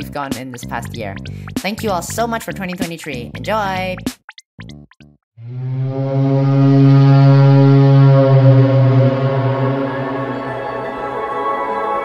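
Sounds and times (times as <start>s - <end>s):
low held synth note: 5.4s - 12.0s.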